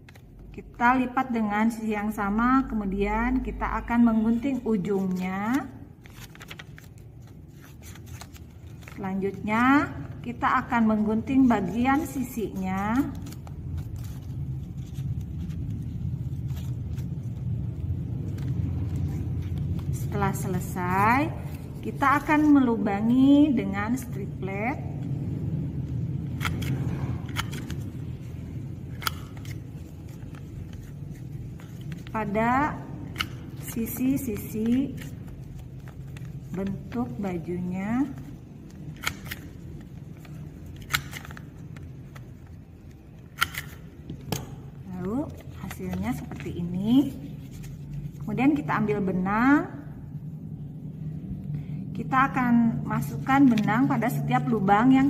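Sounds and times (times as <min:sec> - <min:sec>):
steady low hum: 0:00.0 - 0:55.0
scissors snipping paper: 0:04.5 - 0:09.4, 0:10.8 - 0:17.4, 0:26.2 - 0:47.9.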